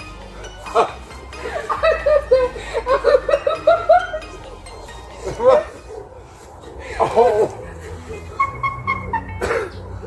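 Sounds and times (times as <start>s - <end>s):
man coughing: 9.4s - 9.8s.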